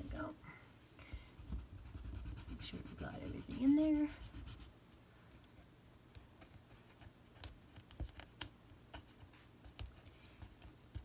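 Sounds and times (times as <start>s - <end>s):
burnishing tool scratching paper: 1.7s - 4.7s.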